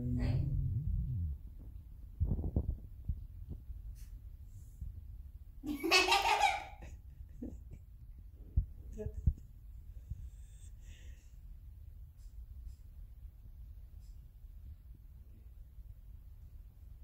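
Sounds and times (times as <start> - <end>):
low rumble: 0.0 - 5.6.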